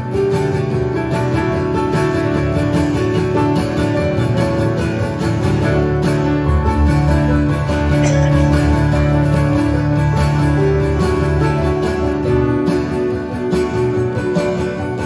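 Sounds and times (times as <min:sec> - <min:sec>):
acoustic guitar picked and strummed: 0:00.0 - 0:15.0
keyboard held notes: 0:02.9 - 0:15.0
deep bass notes: 0:05.1 - 0:14.3.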